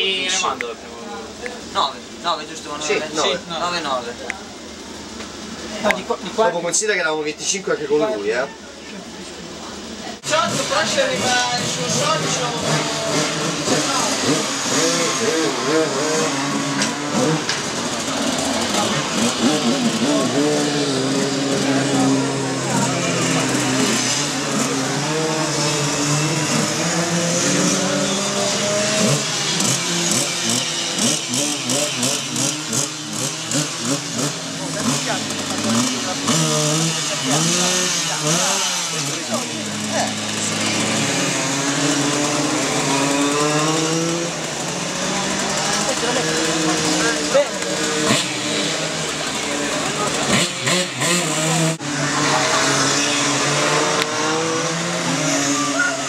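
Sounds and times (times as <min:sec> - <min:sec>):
people talking: 0:00.0 - 0:31.1, 0:34.2 - 0:54.5
small engines revving: 0:00.0 - 0:56.0.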